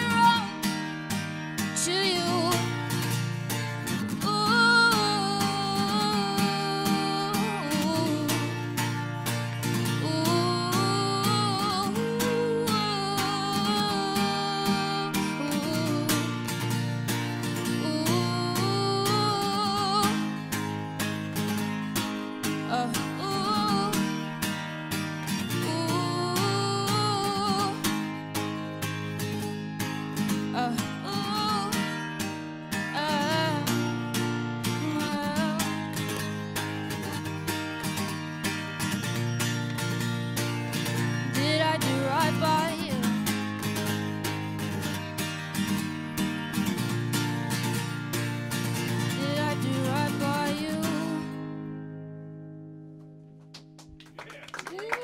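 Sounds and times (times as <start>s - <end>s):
woman singing: 0.0s - 0.8s, 1.6s - 3.2s, 3.9s - 20.7s, 22.4s - 24.3s, 25.4s - 28.5s, 30.3s - 32.1s, 32.7s - 36.2s, 41.2s - 44.0s, 48.9s - 51.5s, 54.7s - 55.0s
acoustic guitar strumming: 0.0s - 53.8s.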